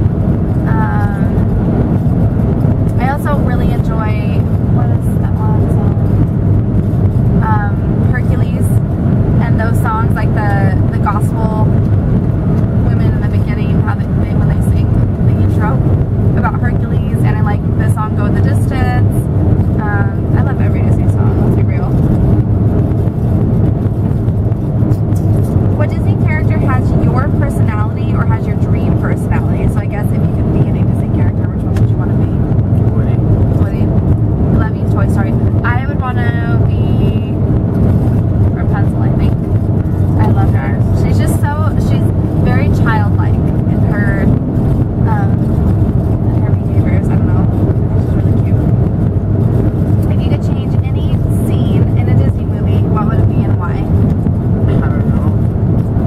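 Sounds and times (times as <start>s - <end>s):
car interior drone: 0.0s - 56.0s.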